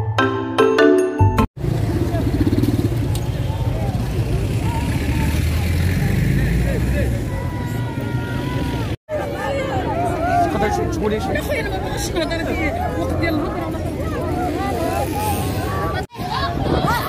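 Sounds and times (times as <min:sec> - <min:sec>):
vehicle engine rumbling: 0:01.6 - 0:16.1
crowd voices: 0:01.8 - 0:17.0.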